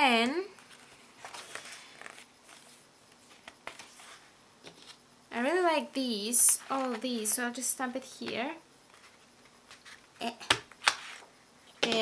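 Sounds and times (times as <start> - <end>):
paper pages rustling: 0.5 - 5.0, 8.9 - 10.2.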